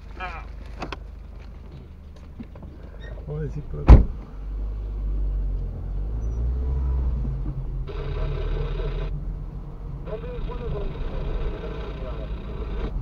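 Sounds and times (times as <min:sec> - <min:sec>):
car engine rumble inside cabin: 0:00.0 - 0:13.0.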